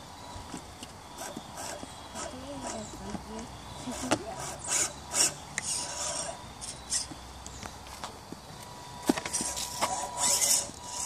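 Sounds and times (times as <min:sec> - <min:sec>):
rubber tyres scraping wood: 0:07.9 - 0:11.0.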